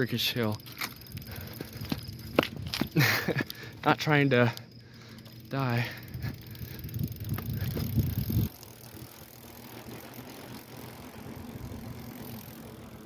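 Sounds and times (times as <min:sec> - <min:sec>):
bicycle rolling rumble: 0:00.0 - 0:13.0.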